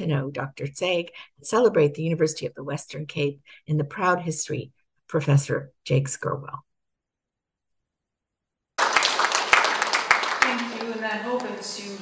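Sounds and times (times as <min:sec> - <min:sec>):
woman speaking: 0:00.0 - 0:06.7, 0:10.4 - 0:12.0
audience applause: 0:08.8 - 0:12.0.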